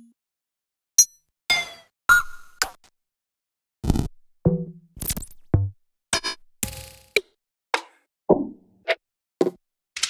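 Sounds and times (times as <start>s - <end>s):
percussion one-shot samples: 3.8s - 7.3s.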